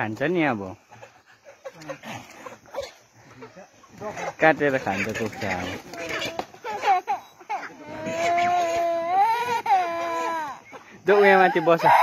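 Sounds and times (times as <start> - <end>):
small boy crying: 6.6 - 10.8.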